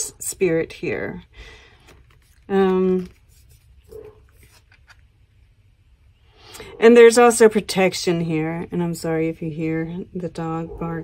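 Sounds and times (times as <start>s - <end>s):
dog barking faintly: 3.8s - 4.4s.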